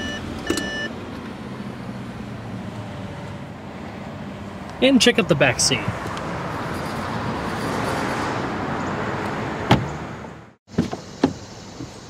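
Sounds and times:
car door clicks: 9.7 - 10.0, 10.7 - 12.0
car door knock: 9.7 - 10.0.

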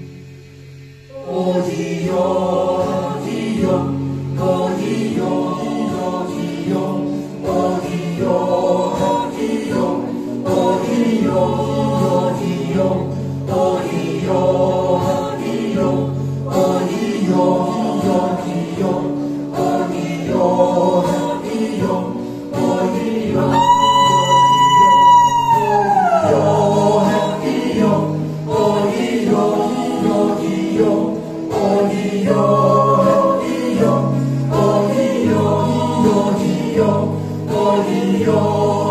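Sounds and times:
acoustic guitar: 0.0 - 38.9
group singing in harmony: 0.0 - 38.9.

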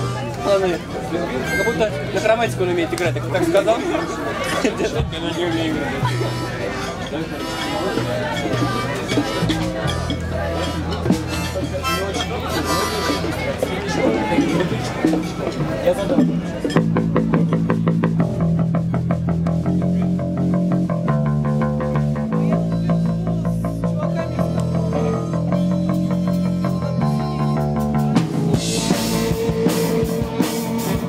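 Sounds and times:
harmonica: 0.0 - 2.2, 4.0 - 15.4, 22.7 - 31.0
electric bass: 0.0 - 31.0
drum kit fast beat: 25.3 - 31.0.

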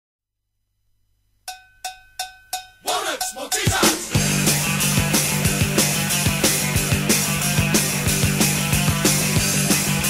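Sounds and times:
cowbell strikes: 1.5 - 4.2.

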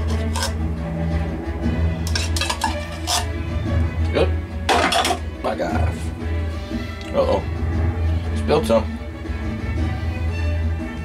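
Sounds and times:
metal spoon scraping tin can: 0.0 - 0.6, 2.0 - 3.4, 4.7 - 5.2
background music: 0.0 - 11.0.

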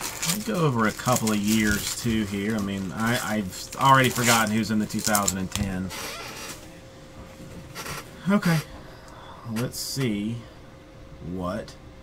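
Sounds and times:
trading cards sliding and rubbing: 0.0 - 5.5.

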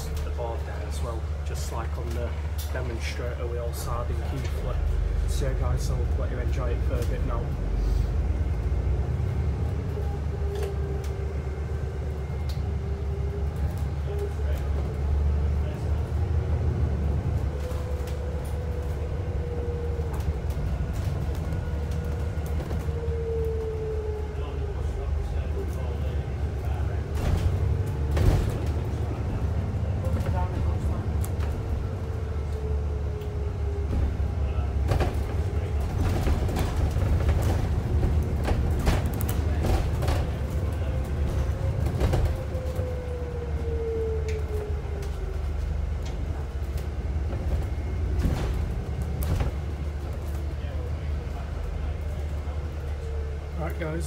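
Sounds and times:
bus engine drone: 0.0 - 54.0
bus gear whine: 6.6 - 53.4
bus body knocking and rattling: 15.5 - 23.1, 26.5 - 32.8, 33.5 - 43.7, 44.8 - 52.3.

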